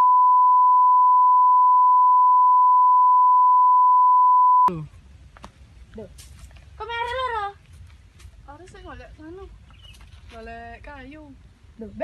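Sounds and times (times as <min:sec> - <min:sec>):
sine test tone: 0:00.0 - 0:04.7
faint background noise: 0:04.7 - 0:12.0.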